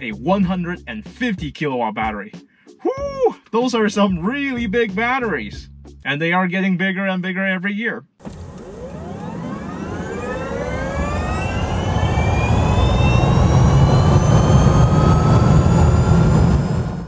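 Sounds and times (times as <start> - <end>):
rising multi-tone whine: 8.3 - 17.0.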